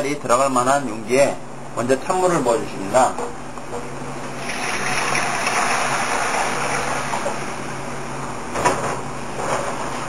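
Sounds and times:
water pouring into metal pan: 4.4s - 7.4s.

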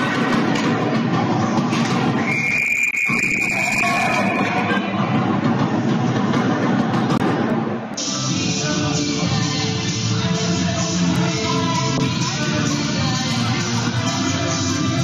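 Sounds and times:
ice rink crowd din: 0.0s - 15.0s
referee whistle blast: 2.2s - 4.8s.

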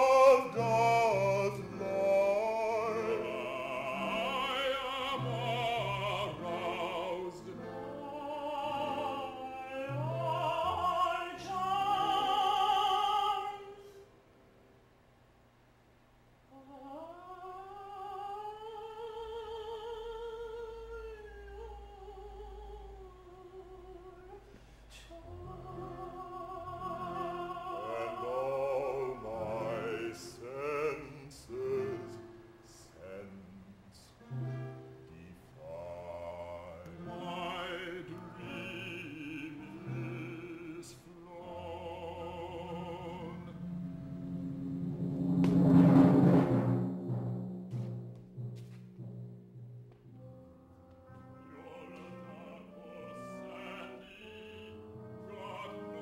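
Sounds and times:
chamber ensemble music: 0.0s - 14.1s, 25.1s - 33.3s, 34.2s - 56.0s
instrumental ensemble held notes: 34.2s - 56.0s.

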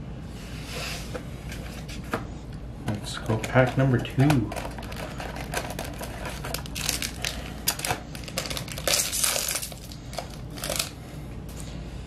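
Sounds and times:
plastic wrapper crinkling: 3.3s - 11.0s.

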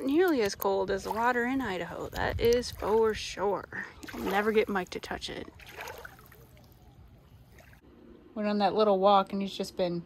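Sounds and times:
water lapping on gravel shore: 0.0s - 7.8s.

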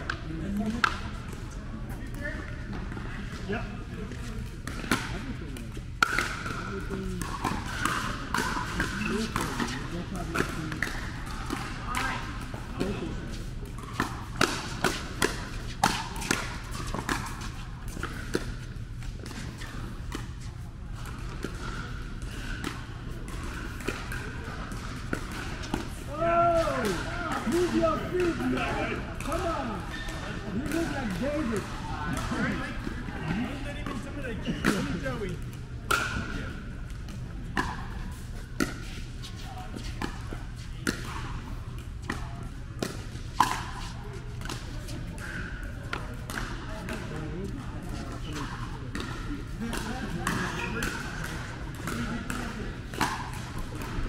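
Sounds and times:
hall hum and chatter: 0.0s - 54.0s
paddles hitting plastic ball: 4.6s - 13.0s, 42.8s - 45.3s, 48.1s - 54.0s.

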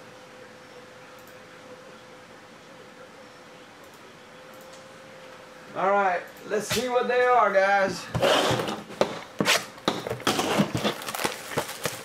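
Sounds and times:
cardboard clicks and scrapes: 8.2s - 12.0s
plastic wrap crinkling and tearing: 10.2s - 12.0s.

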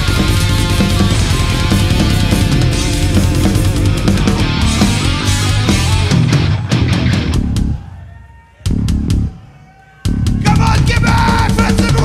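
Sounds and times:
guitar ringing: 0.0s - 7.7s
death metal band playing: 0.0s - 9.4s, 10.0s - 12.0s.

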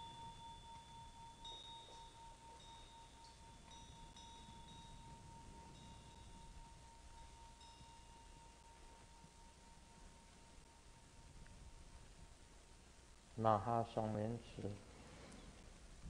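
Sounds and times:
bell ringing tone: 0.0s - 11.3s
soft high tinkles: 0.0s - 14.4s.

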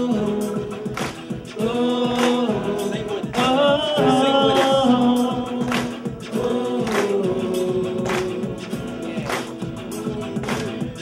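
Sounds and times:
man singing: 0.0s - 11.0s
percussive beat: 0.0s - 11.0s.

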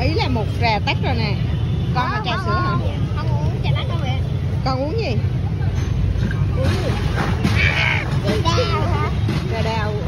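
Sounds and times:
people talking: 0.0s - 5.8s, 6.5s - 10.0s.

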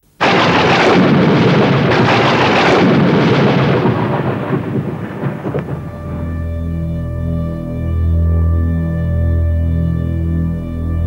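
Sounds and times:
thunder-like rumbling roar: 0.2s - 6.5s.

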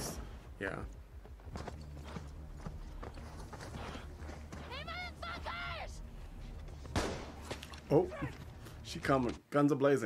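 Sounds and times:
horse hooves clopping: 0.8s - 5.8s.

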